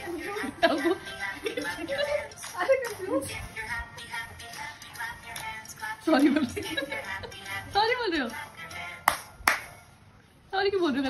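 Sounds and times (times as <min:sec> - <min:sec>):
hand claps: 0:09.0 - 0:09.8.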